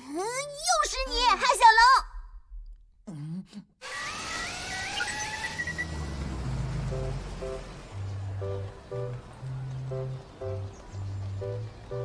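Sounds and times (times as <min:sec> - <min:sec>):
electronic warbling whine: 0:04.4 - 0:06.0
car traffic rumble: 0:05.3 - 0:12.0
background music notes: 0:05.9 - 0:12.0.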